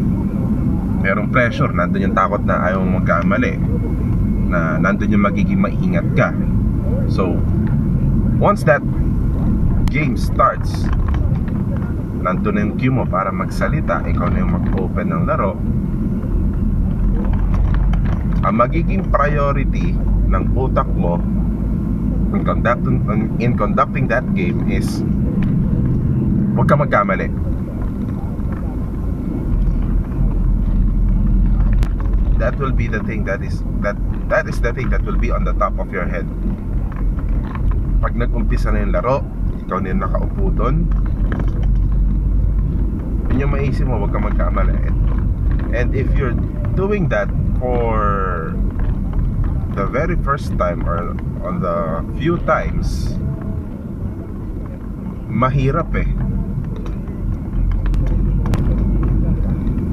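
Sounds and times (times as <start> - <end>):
car interior engine and road rumble: 0.0 - 59.9.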